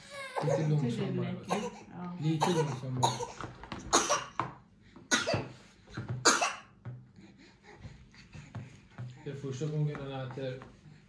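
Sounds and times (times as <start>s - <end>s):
person coughing: 1.4s - 4.4s, 5.1s - 5.5s, 6.2s - 6.7s.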